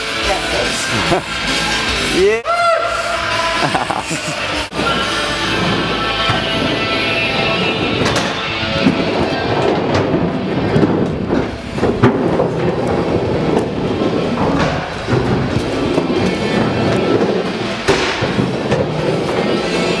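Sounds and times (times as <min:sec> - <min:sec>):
rock music: 0:00.0 - 0:20.0
skateboard wheels rolling on concrete: 0:03.2 - 0:20.0
skateboard clacks: 0:04.7 - 0:20.0.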